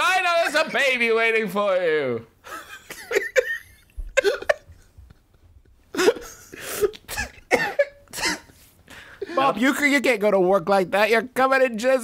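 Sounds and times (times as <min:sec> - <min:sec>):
man laughing: 0:02.4 - 0:08.5.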